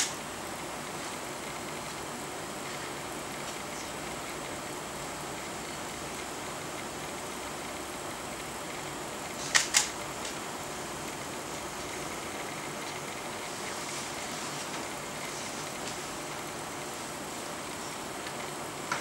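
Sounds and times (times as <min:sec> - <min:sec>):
fan-like room hiss: 0:00.0 - 0:19.0.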